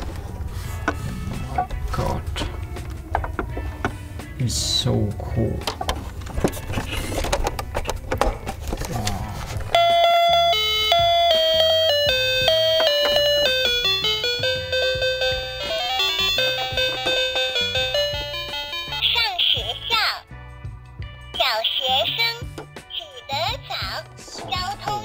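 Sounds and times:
electronic toy beeping tune: 9.8s - 20.1s.

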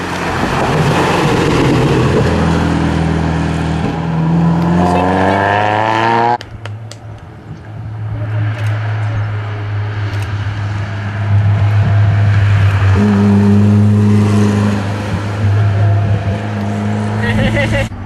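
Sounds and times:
people's voices: 4.7s - 5.7s, 7.4s - 10.3s
rally car engine running: 7.6s - 17.9s.

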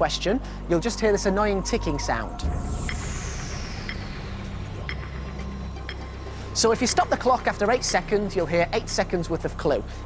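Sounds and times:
steady low drone: 0.0s - 10.0s
faint high tone sliding down: 1.1s - 6.6s
game-show clock ticking: 3.9s - 6.4s.

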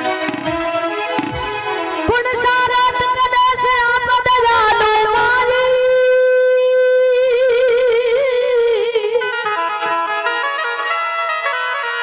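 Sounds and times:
bowed fiddle melody: 0.0s - 2.3s
frame drum strokes: 0.3s - 1.8s.

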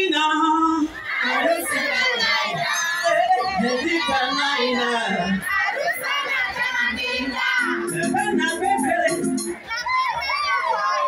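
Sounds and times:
high voices singing: 0.8s - 11.0s
crowd calling out: 0.9s - 11.0s
music backing track: 7.6s - 9.6s.

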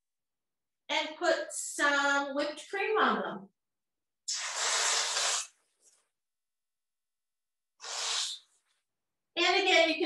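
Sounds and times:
faint puff: 4.3s - 5.6s, 7.8s - 8.5s
whipped cream can spraying: 4.3s - 5.6s, 7.8s - 8.4s.

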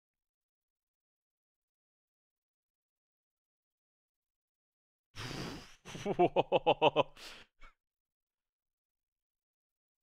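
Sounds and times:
man laughing: 5.8s - 7.4s.

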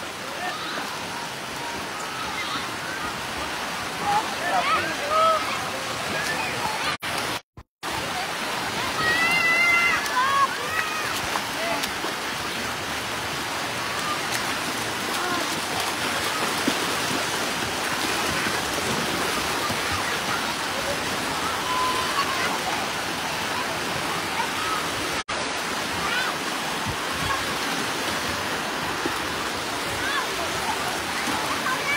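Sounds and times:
water rushing in a wave pool: 0.0s - 31.9s.

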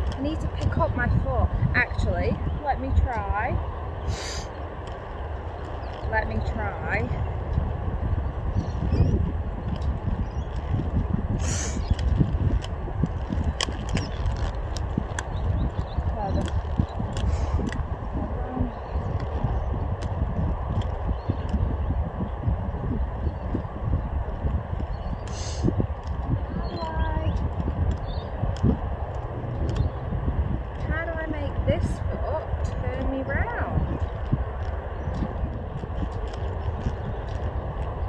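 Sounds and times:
roller skate wheels rolling: 2.9s - 38.0s.

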